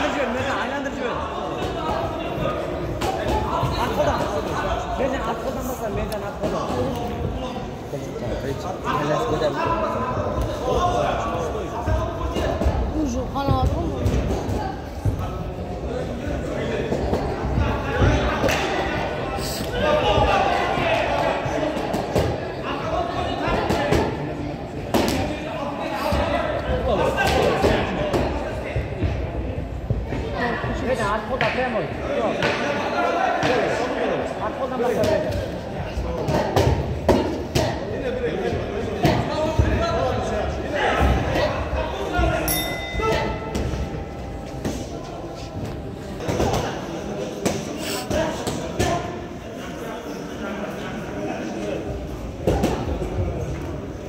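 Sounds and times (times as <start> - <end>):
spectators' voices echoing: 0.0 - 54.0.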